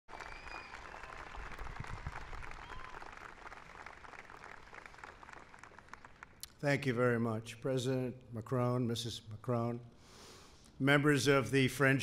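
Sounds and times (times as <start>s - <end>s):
audience applauding: 0.1s - 6.4s.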